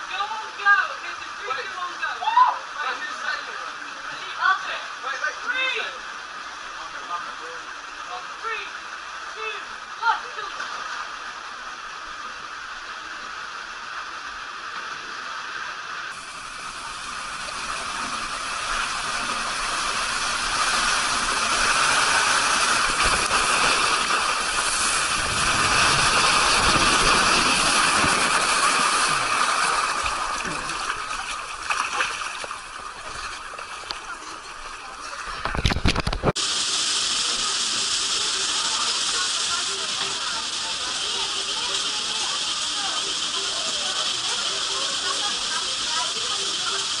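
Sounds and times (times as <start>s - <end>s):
water rushing down a water slide: 0.0s - 47.0s.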